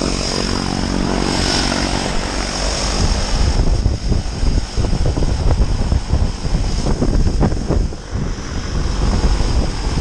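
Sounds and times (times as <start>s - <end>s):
propeller airplane engine droning: 0.0s - 10.0s.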